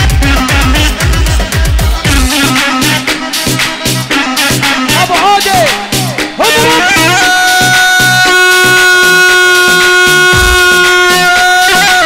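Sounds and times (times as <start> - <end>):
steady drum beat: 0.0 - 11.8
keyboard held melody note: 0.0 - 12.0.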